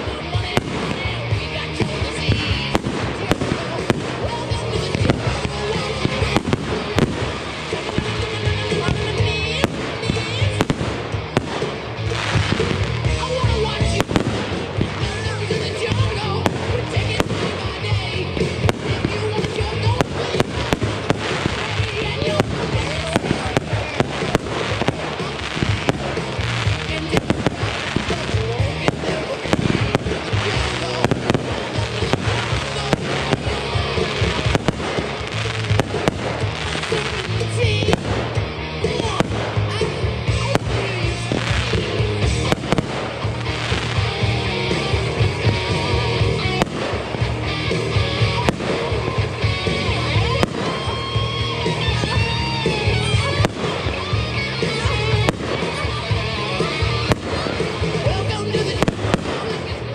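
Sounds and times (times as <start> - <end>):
fireworks bangs and crackles: 0.0 - 59.9
music playing: 0.0 - 59.9.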